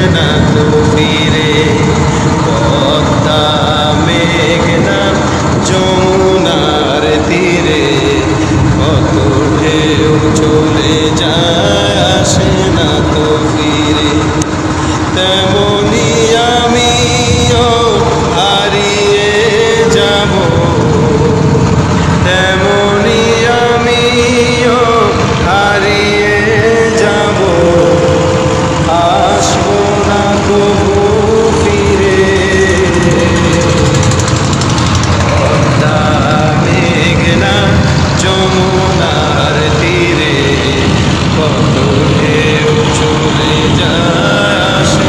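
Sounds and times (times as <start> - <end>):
boat engine rumbling: 0.0 - 45.0
man singing a wavering note: 0.0 - 45.0.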